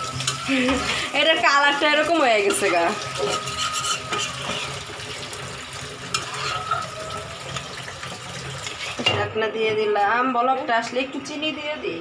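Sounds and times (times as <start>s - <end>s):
gravy bubbling in a pot: 0.0s - 9.1s.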